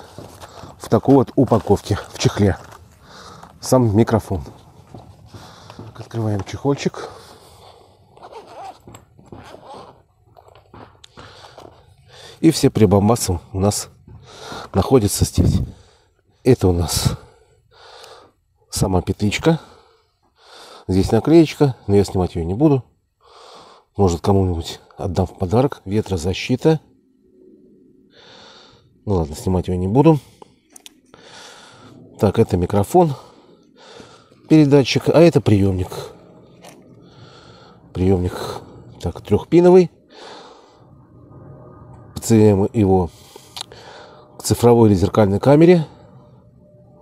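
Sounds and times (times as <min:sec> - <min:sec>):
zipper being pulled open: 0:08.2 - 0:08.8
soft breath intake: 0:27.2 - 0:29.0, 0:30.2 - 0:32.2, 0:33.2 - 0:34.5, 0:35.9 - 0:39.0, 0:40.0 - 0:41.2, 0:43.1 - 0:44.4.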